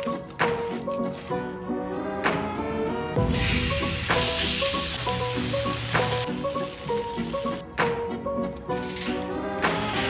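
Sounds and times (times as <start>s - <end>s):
chicken sizzling on a griddle: 3.2s - 7.6s.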